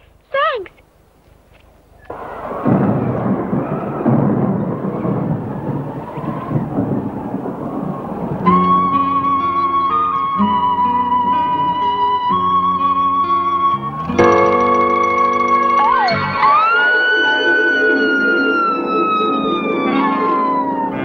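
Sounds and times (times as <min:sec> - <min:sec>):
rolling thunder: 0:02.1 - 0:21.0
soundtrack music with held melody: 0:08.8 - 0:21.0.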